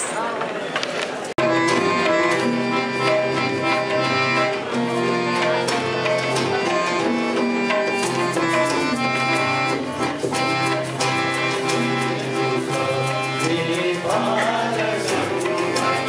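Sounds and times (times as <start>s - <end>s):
harmonium playing: 1.4s - 16.0s.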